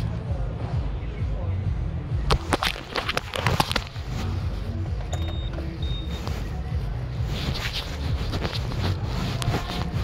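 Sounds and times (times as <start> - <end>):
traffic engines rumbling: 3.2 - 10.0
short high-pitched beeps: 5.1 - 6.4.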